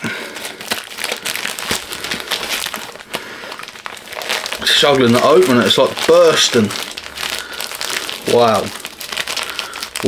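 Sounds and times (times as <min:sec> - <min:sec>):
packaging crinkling and rustling: 0:00.0 - 0:10.0.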